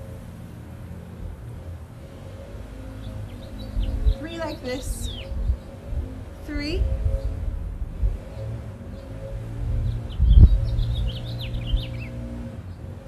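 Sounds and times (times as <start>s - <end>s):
small bird chirping: 3.0s - 5.9s, 9.8s - 12.8s.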